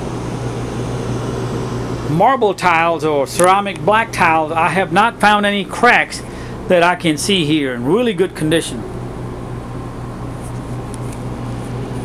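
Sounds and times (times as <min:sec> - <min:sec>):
air conditioner humming: 0:00.0 - 0:12.0
fan air whoosh: 0:00.0 - 0:12.0.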